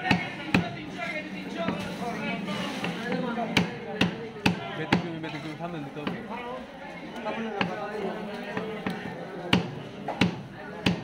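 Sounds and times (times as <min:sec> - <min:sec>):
cleaver chopping fish on wood: 0:08.8 - 0:11.0.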